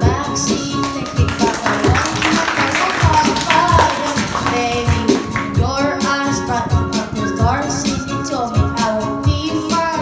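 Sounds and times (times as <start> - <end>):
instrumental pop music: 0.0 - 10.0.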